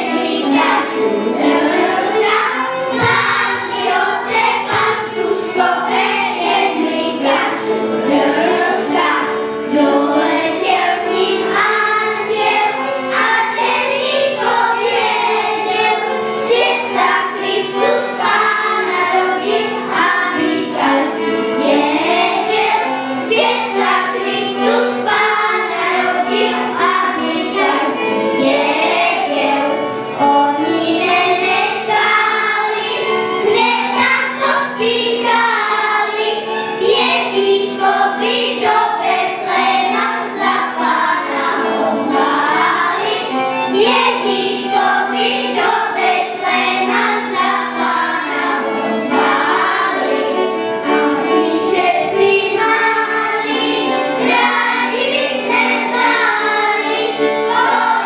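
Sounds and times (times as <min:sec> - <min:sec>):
children's choir singing: 0:00.0 - 0:58.0.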